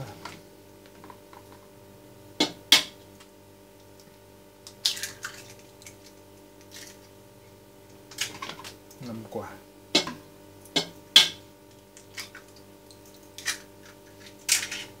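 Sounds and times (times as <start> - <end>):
faint steady hum: 0.0 - 15.0
eggs cracked against metal pot: 4.6 - 7.0, 9.9 - 15.0.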